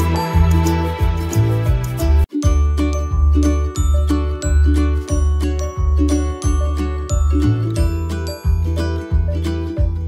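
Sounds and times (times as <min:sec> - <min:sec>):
chiming electronic music with bass beat: 0:02.5 - 0:10.0.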